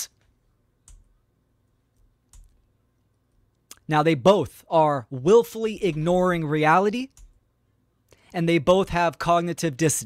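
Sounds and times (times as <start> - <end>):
person speaking: 0.0 - 0.2, 3.6 - 7.3, 8.2 - 10.0
computer clicks: 0.8 - 1.1, 2.0 - 2.7.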